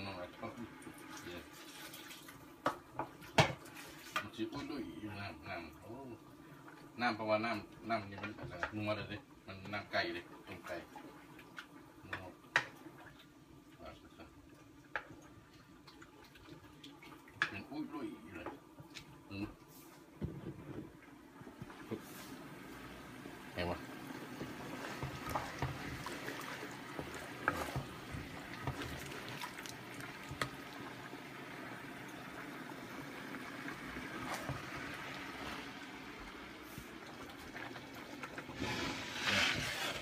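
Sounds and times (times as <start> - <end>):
gravy bubbling in a wok: 0.0 - 19.6, 20.2 - 40.0.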